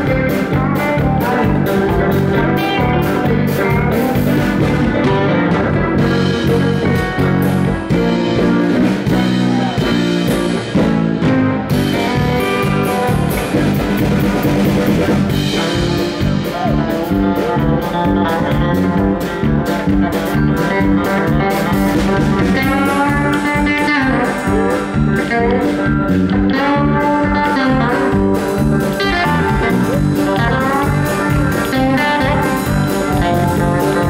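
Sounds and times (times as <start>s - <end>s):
country-rock band playing: 0.0s - 34.0s.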